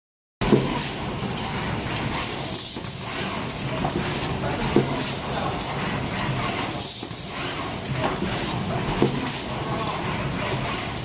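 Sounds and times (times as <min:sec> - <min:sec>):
wrapping machine humming: 0:00.4 - 0:11.0.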